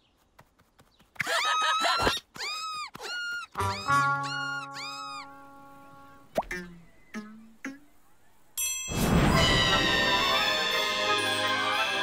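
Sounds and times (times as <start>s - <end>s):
cartoon rising-and-falling cries: 1.3s - 5.5s.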